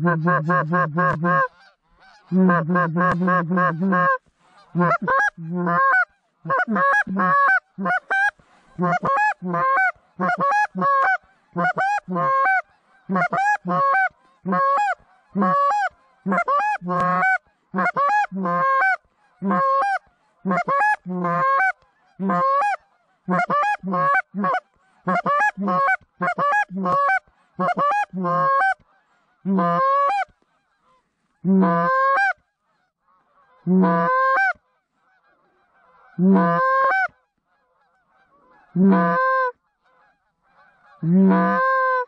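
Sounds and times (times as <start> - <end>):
goose call clucks: 0.0 - 42.0.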